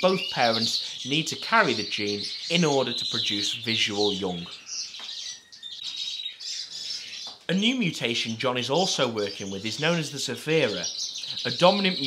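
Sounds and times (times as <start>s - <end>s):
finches chirping and twittering: 0.0s - 12.0s.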